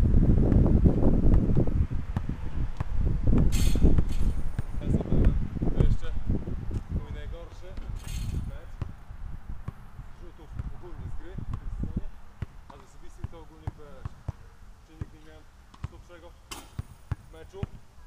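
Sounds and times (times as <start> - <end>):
wind rumbling on microphone: 0.0 - 13.4.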